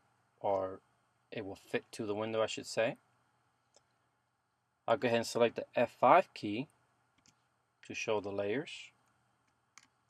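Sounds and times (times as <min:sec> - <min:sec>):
man's voice: 0:00.4 - 0:00.8, 0:01.4 - 0:03.0, 0:04.9 - 0:06.7, 0:07.9 - 0:08.9.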